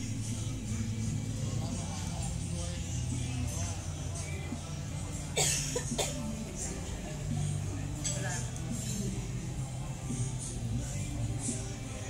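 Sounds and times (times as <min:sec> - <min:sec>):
background music: 0:00.0 - 0:12.0
person coughing: 0:05.4 - 0:06.3.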